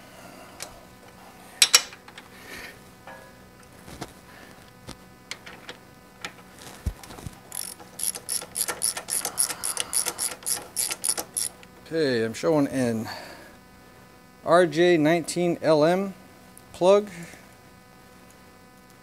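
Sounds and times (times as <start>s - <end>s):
metal tools clacking: 1.6s - 2.1s
socket ratchet clicking: 7.5s - 11.8s.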